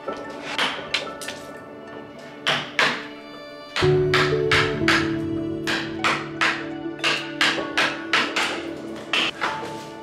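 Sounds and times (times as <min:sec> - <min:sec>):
background music: 0:00.0 - 0:10.0
mallet striking chisel into log: 0:03.8 - 0:09.4.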